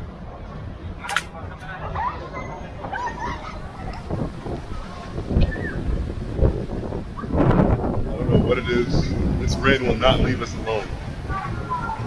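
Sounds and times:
gusty wind on microphone: 1.8s - 12.0s.

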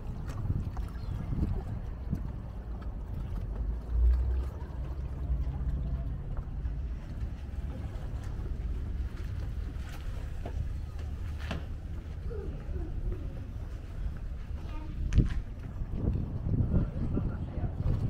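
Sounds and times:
distant boat engine hum: 0.0s - 18.0s
wind buffeting microphone: 0.0s - 18.0s.

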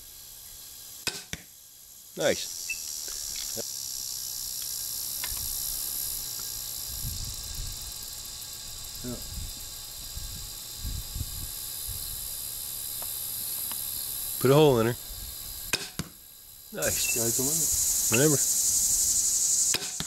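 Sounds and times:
insects chirring: 0.0s - 20.0s.

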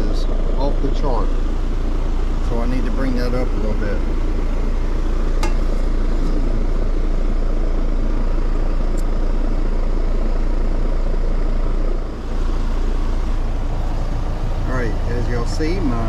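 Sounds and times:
compressor low hum: 0.0s - 16.0s
condenser fan rushing: 0.0s - 16.0s.

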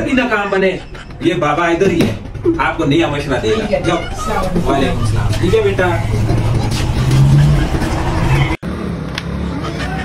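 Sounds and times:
vehicle engine running: 0.0s - 9.2s
street noise: 0.0s - 10.0s.

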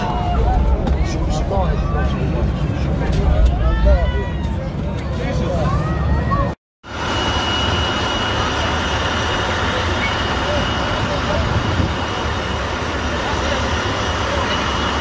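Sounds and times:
faint voices: 0.0s - 6.6s
engine rumble with high whine: 0.0s - 15.0s.

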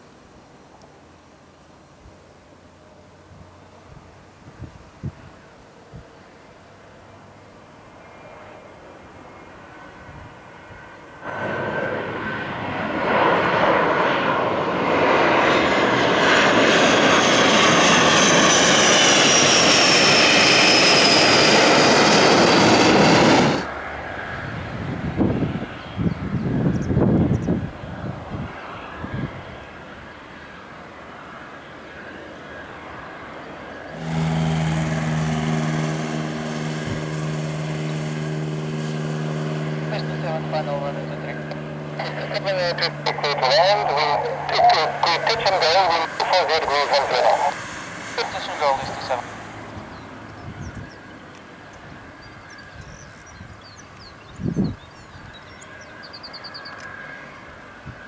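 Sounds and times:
jet engine roar with whine: 2.1s - 58.0s
droning hum: 33.8s - 51.2s.

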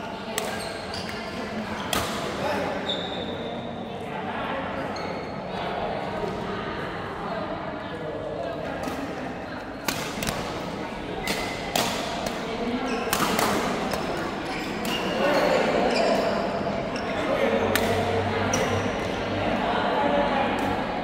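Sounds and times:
voices in background: 0.0s - 21.0s
rackets striking shuttlecock: 11.2s - 12.5s, 13.1s - 14.2s, 17.7s - 18.0s.

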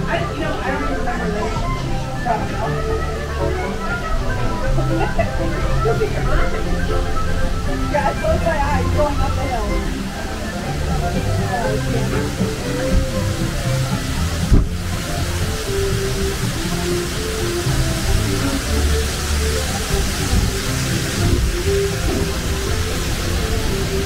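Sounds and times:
background music: 0.0s - 24.0s
water rushing and splashing: 0.0s - 24.0s.

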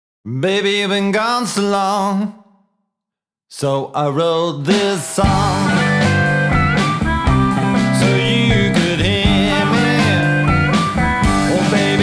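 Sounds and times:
bass and drums: 4.7s - 12.0s
blues-rock guitar: 4.8s - 12.0s.

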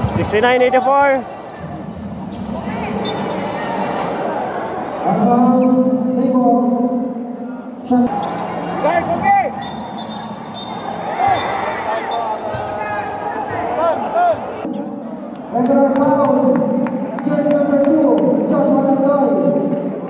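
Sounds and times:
crowd noise: 0.0s - 20.0s
sneakers squeaking on court: 8.1s - 8.8s, 9.6s - 12.8s.

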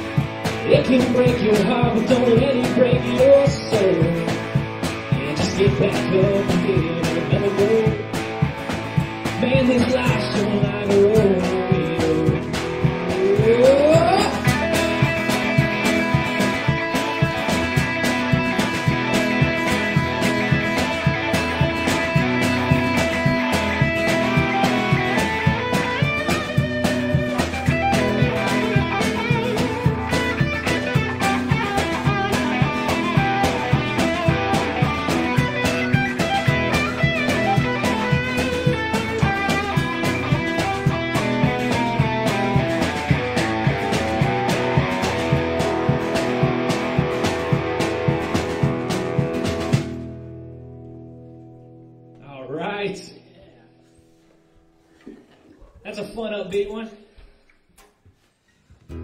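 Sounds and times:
steady drum beat: 0.0s - 50.1s
electric and acoustic guitars: 0.0s - 56.8s, 58.5s - 59.0s.

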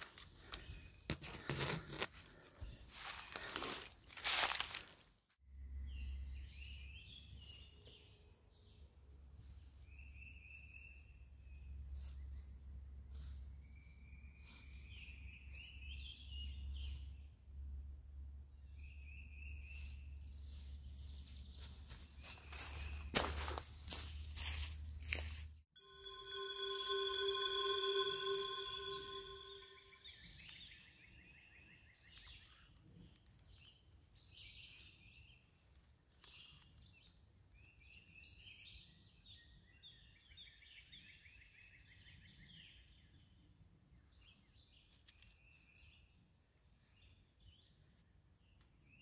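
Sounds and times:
songbirds chirping: 2.2s - 4.6s, 5.5s - 24.8s
footsteps crunching dry leaves: 2.3s - 5.1s, 20.2s - 25.6s
held multi-pitch tone: 25.8s - 30.1s.

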